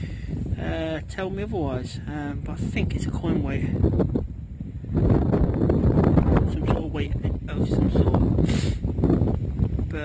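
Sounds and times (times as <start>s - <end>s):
wind buffeting microphone: 0.0s - 10.0s
short hiss: 8.4s - 8.8s.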